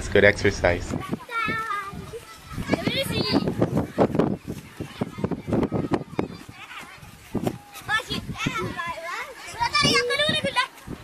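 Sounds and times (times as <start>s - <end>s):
children talking and calling out: 0.8s - 11.0s.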